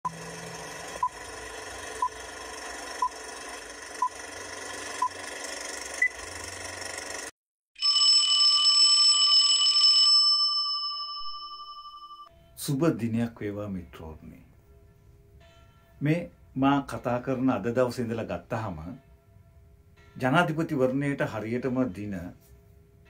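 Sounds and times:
bright ringing chime: 7.8s - 12.4s.

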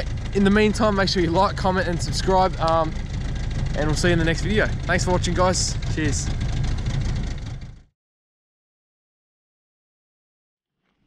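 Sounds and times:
outboard motor running: 0.0s - 7.9s.

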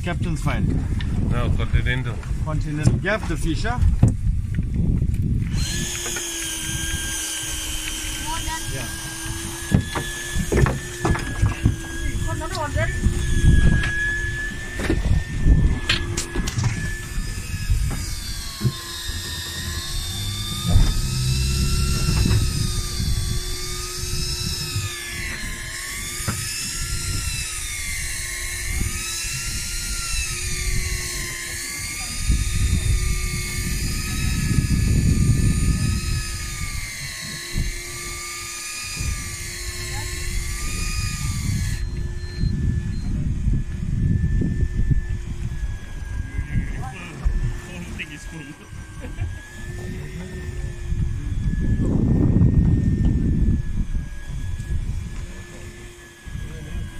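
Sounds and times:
electric fishing reel motor whining: 0.0s - 56.9s
low hum: 0.0s - 56.9s
wind rumble: 0.0s - 56.9s.

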